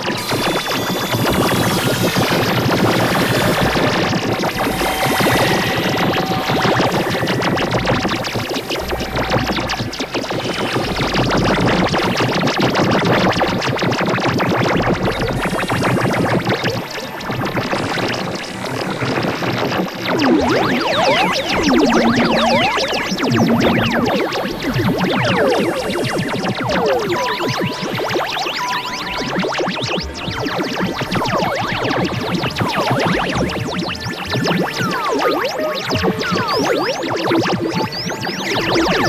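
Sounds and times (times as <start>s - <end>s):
experimental electronic noise music: 0.0s - 31.8s.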